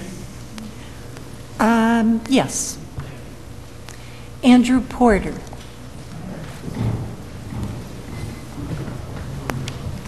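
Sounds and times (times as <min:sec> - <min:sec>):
low rumbling room noise: 0:00.0 - 0:10.0.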